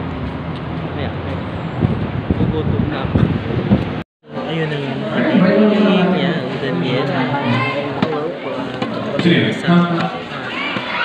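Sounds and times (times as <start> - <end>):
street traffic noise: 0.0 - 11.0
man speaking: 9.0 - 10.2.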